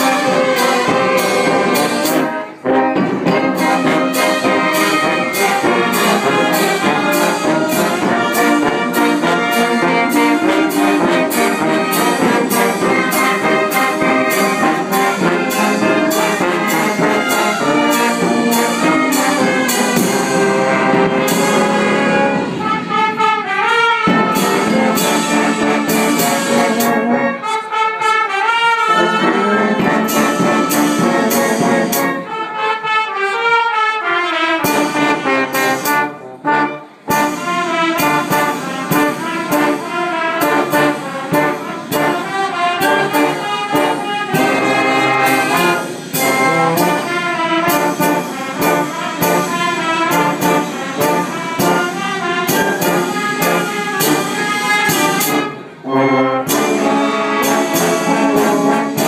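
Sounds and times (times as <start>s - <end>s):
brass band playing: 0.0s - 59.0s.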